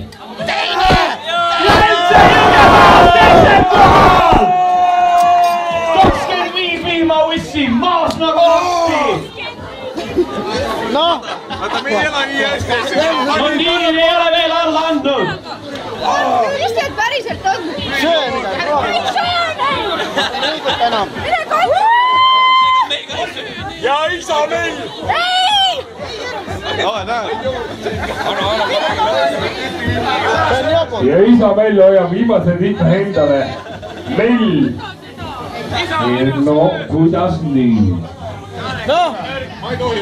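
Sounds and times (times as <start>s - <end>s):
group chatter: 0.0s - 40.0s
people shouting and cheering: 0.0s - 40.0s.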